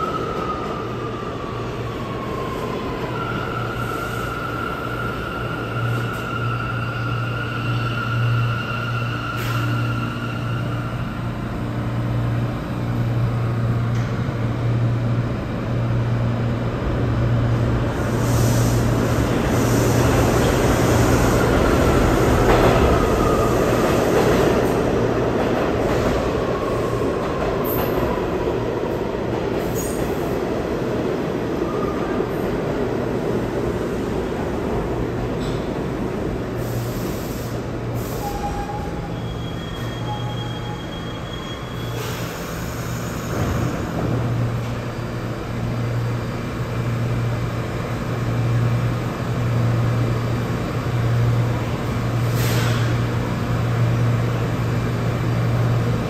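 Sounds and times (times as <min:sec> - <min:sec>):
subway train rumble: 0:00.0 - 0:56.0
wheel squeal: 0:38.2 - 0:42.3.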